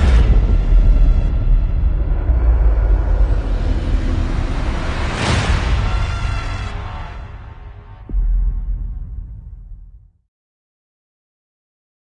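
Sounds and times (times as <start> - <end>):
cinematic trailer music: 0.0 - 10.2.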